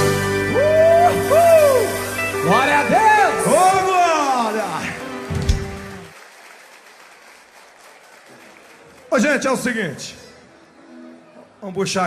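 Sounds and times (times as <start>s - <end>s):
audience applause: 3.2s - 10.0s.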